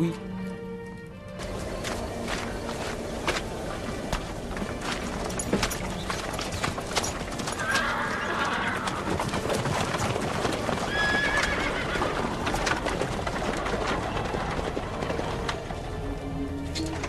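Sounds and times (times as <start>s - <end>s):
horse hooves clopping: 0.8s - 17.0s
horse neighing: 7.5s - 9.4s, 10.8s - 12.5s.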